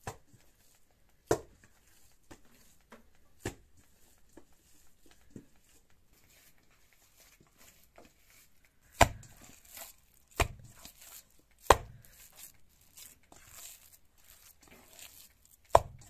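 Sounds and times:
soft squishing of meat: 0.0 - 16.0.

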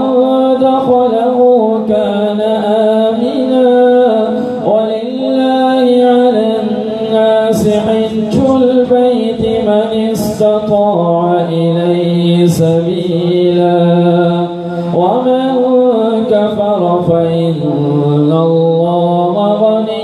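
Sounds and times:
man chanting melodically: 0.0 - 20.0.

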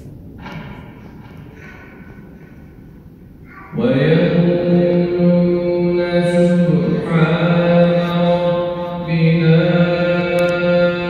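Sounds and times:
man chanting melodically: 3.5 - 11.0.

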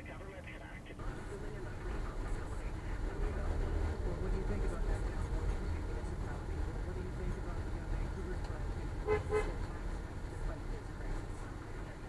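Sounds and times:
vehicle rumble: 1.0 - 12.0
car horn toots: 9.0 - 9.6.

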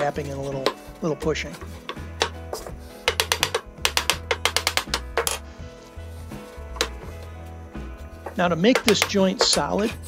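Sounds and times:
background music: 0.0 - 10.0
hammer tapping wood: 0.6 - 5.4, 8.2 - 9.7.

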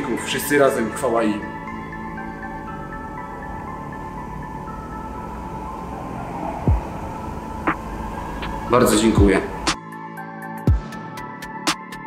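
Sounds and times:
background music sustained tones: 0.0 - 12.0
deep sound dropping in pitch: 2.5 - 9.7.

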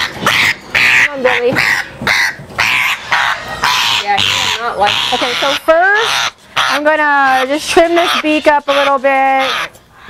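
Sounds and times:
parrot screeching: 0.0 - 10.0.

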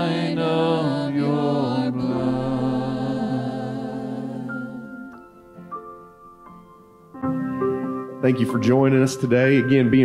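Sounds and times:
voices singing together: 0.0 - 5.2.

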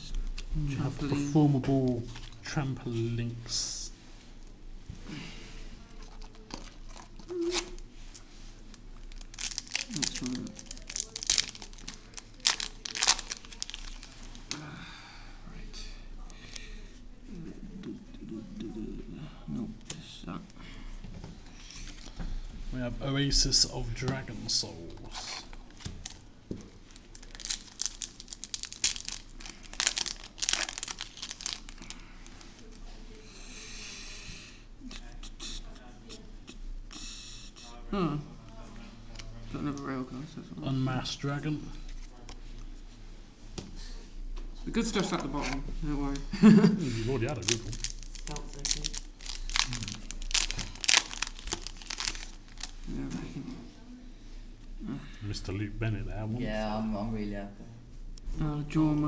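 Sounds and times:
foil wrapper tearing and crinkling: 8.7 - 14.5, 27.0 - 32.0, 47.3 - 52.8.

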